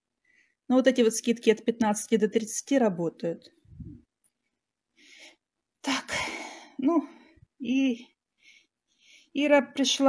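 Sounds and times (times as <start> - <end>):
woman breathing in softly: 5.0 - 5.5.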